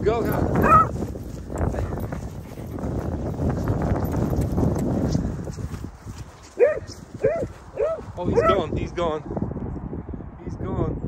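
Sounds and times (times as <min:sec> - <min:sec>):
running footfalls on grass: 0:00.0 - 0:08.8
handheld microphone rumble: 0:00.0 - 0:10.1
dog yelping: 0:00.6 - 0:00.9, 0:06.6 - 0:08.6.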